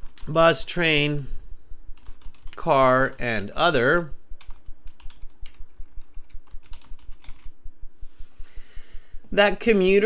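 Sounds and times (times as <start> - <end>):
computer keyboard typing: 2.0 - 2.6, 4.4 - 7.5.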